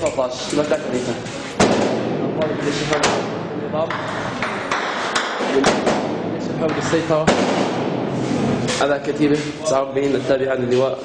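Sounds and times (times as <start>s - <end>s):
gunshots: 7.2s - 8.2s.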